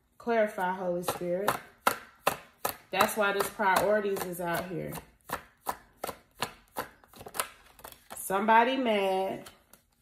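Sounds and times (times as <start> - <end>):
cards being shuffled: 4.5 - 8.3.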